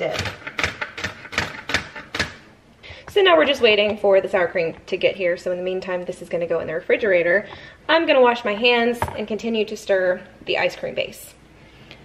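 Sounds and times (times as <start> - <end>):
knife chopping on cutting board: 0.1 - 2.4.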